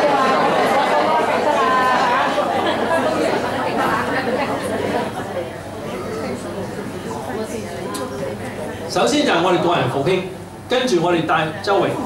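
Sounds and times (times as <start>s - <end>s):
audience chatter in a hall: 0.0s - 12.0s.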